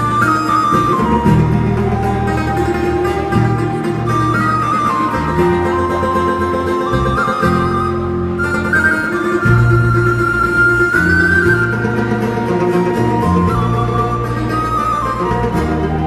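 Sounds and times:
folk band playing banjo and guitar: 0.0s - 16.0s
high melody of held notes: 0.0s - 16.0s.

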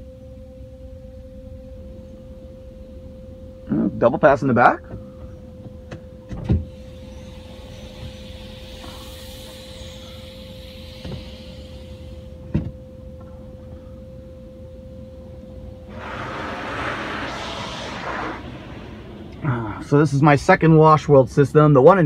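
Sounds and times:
car wash mechanical hum: 6.2s - 13.5s, 15.8s - 21.1s.

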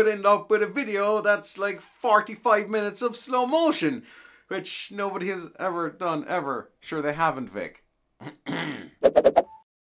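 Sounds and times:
man clearing his throat: 8.2s - 9.0s.

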